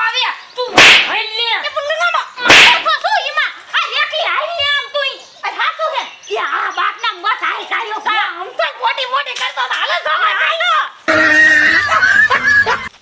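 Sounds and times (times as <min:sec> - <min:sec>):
women speaking excitedly: 0:00.0 - 0:11.0
loud slaps: 0:00.7 - 0:01.3, 0:02.4 - 0:03.0.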